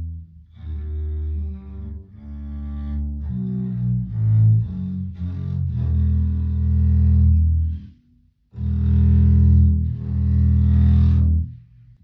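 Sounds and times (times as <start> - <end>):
double bass low notes: 0.0 - 12.0.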